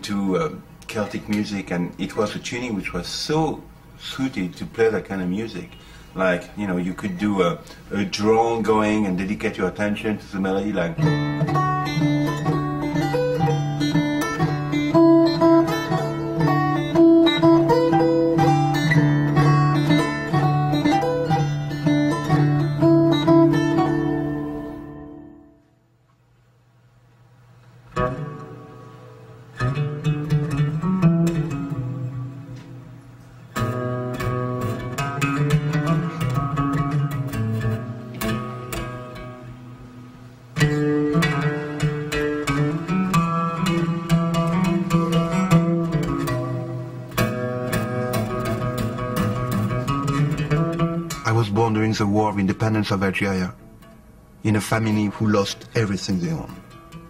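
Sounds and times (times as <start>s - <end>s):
plucked-string music: 4.5s - 25.9s, 27.6s - 57.0s
fingerstyle acoustic guitar: 10.4s - 25.8s, 27.8s - 52.1s, 55.7s - 57.0s.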